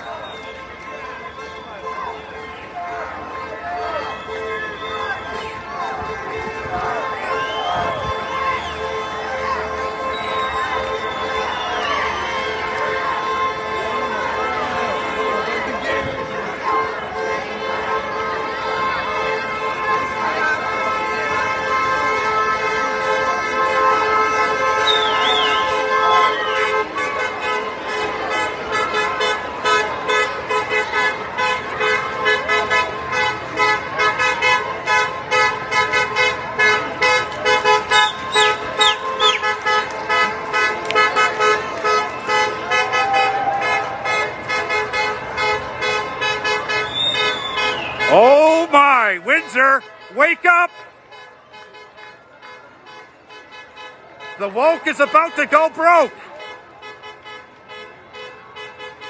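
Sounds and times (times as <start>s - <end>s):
vehicle horns honking: 0.1s - 59.0s.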